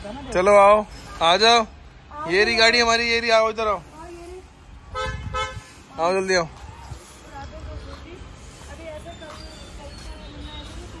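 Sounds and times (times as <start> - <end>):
faint low traffic rumble: 0.0 - 11.0
vehicle horn toots: 4.9 - 5.6.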